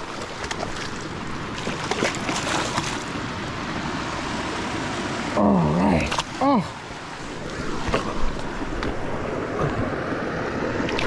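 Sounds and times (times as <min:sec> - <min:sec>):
water rushing: 0:00.0 - 0:11.0.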